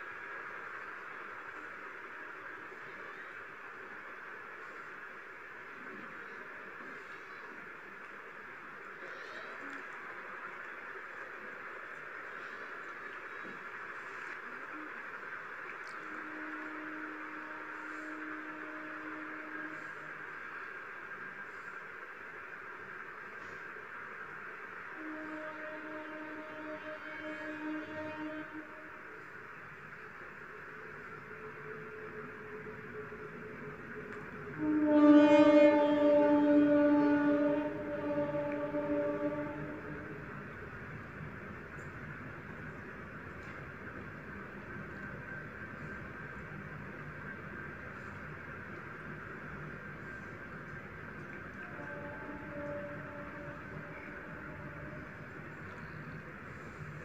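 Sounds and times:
recording hiss: 0.0 - 57.0.

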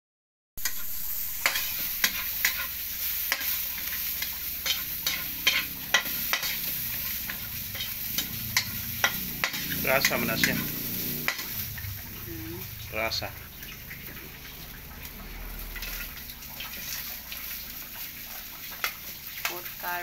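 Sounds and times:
metal spatula scraping a wok: 0.6 - 12.2, 15.6 - 19.5
frying sizzle: 0.6 - 20.0.

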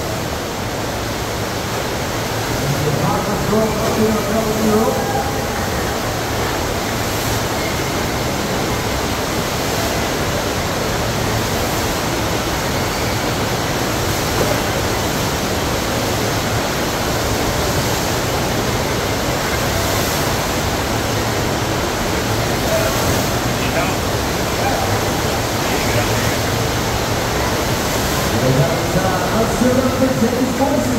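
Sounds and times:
rush of pumped water: 0.0 - 30.9.

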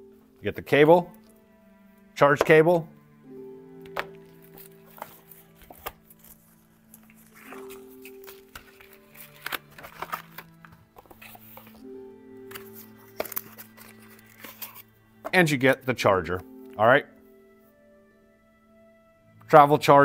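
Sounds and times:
soft background music: 0.0 - 20.0
hands handling cardboard box: 3.9 - 11.8, 12.5 - 15.4.

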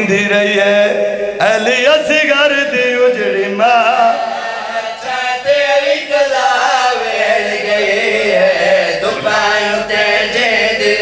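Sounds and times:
men chanting into microphones: 0.0 - 11.0.

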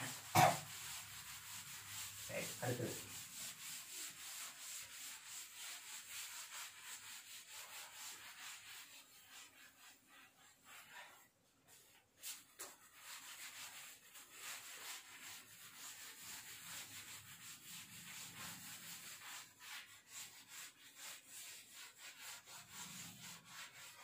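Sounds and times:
cloth wiping blackboard: 0.0 - 24.0.

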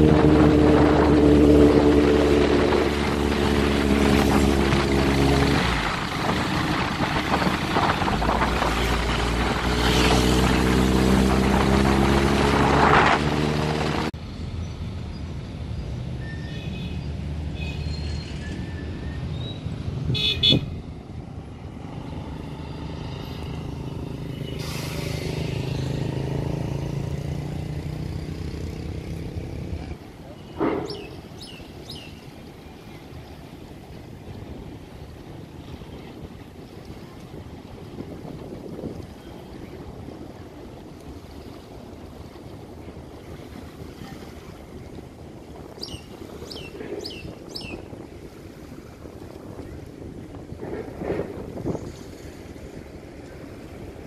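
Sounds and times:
passing vehicle engine: 0.0 - 16.3, 20.7 - 31.6
outdoor traffic ambience: 0.0 - 54.0
car horn toot: 20.1 - 20.7.

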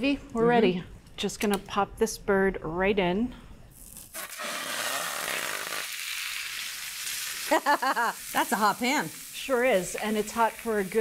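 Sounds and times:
chicken sizzling in hot oil: 4.1 - 11.0
person laughing: 7.5 - 8.2.

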